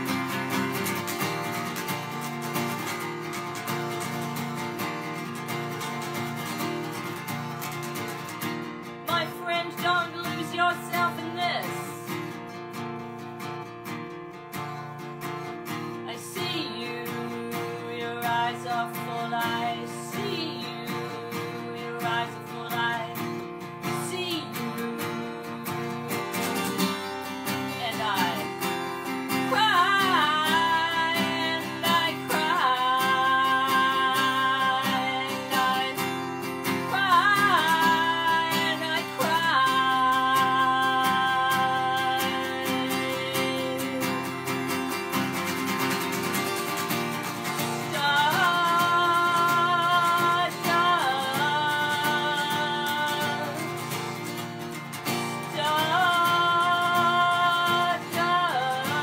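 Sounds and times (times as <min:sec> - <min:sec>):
acoustic guitar strumming: 0:00.0 - 0:59.0
woman singing: 0:00.0 - 0:59.0.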